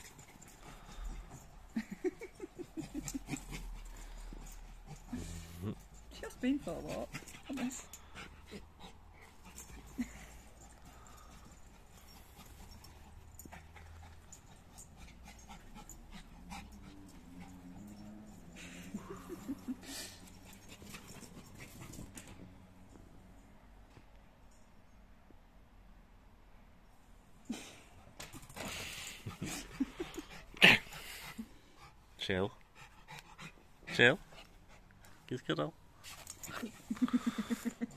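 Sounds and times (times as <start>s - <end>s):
dog panting: 0.0s - 22.4s, 28.5s - 37.9s.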